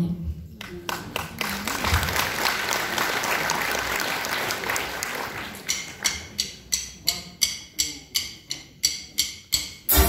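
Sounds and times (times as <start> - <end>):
audience applauding: 0.7 - 6.1.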